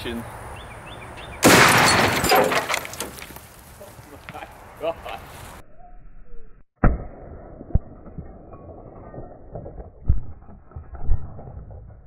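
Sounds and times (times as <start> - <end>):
ceramic plates shattering: 1.4 - 3.2
fragments clattering down: 1.4 - 3.4.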